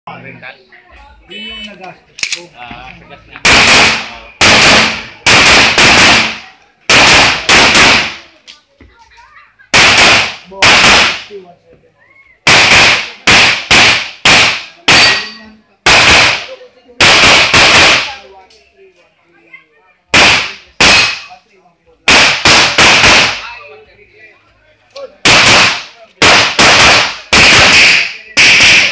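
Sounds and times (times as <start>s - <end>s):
pistol shots: 3.4s - 8.2s, 9.7s - 11.3s, 12.5s - 18.2s, 20.1s - 21.3s, 22.1s - 23.5s, 25.2s - 28.9s.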